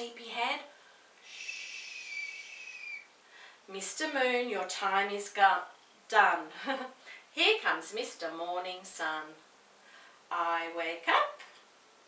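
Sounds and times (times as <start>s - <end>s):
woman shushing: 1.3s - 3.1s.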